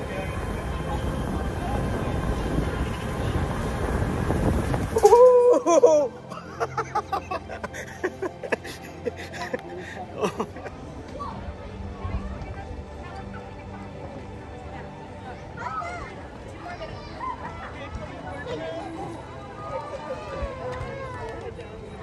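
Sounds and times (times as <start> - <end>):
loud laughing shout: 5.0 - 9.4
quiet laughter: 5.1 - 10.9.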